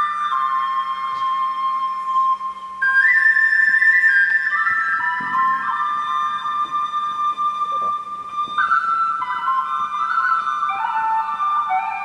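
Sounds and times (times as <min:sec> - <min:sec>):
flute slow melody: 0:00.0 - 0:12.0.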